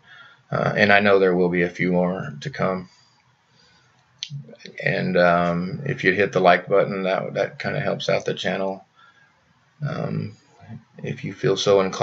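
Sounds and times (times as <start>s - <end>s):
man speaking: 0.5s - 2.9s, 4.2s - 8.8s, 9.8s - 12.0s.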